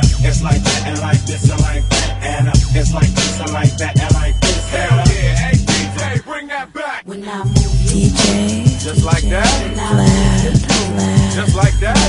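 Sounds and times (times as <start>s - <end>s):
rapping over a beat: 0.0s - 12.0s.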